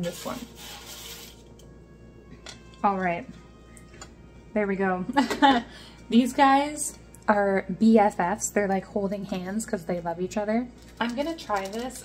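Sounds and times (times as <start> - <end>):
spatula scraping baking sheet: 0.0 - 1.5
soft background music: 0.0 - 12.0.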